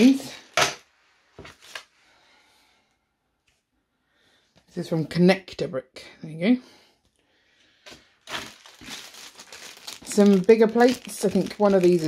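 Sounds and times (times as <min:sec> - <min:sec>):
plastic bag crinkling: 0:07.9 - 0:12.0.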